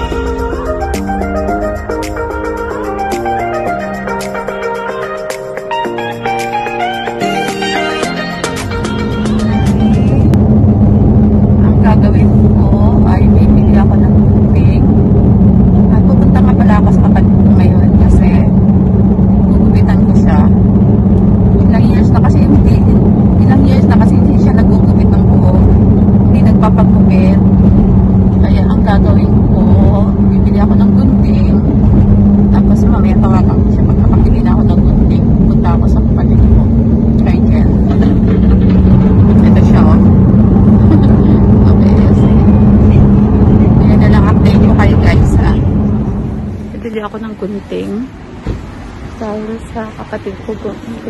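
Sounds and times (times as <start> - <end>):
car cabin drone: 0.0 - 51.0.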